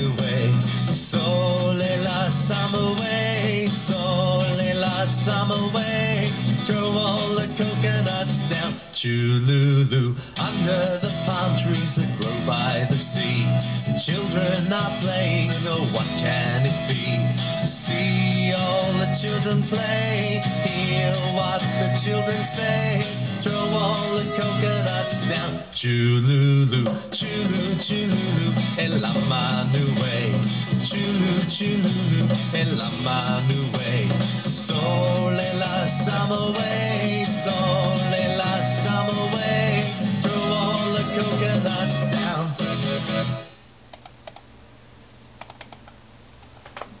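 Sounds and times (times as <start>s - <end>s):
person singing: 0.0s - 43.4s
children's song with guitar: 0.0s - 43.6s
computer keys clicking: 43.9s - 44.5s, 45.4s - 46.0s.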